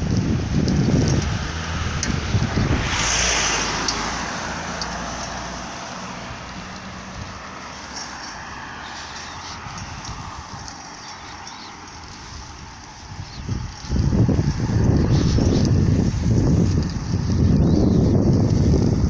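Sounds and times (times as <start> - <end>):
vehicle passing by: 0.0 - 19.0.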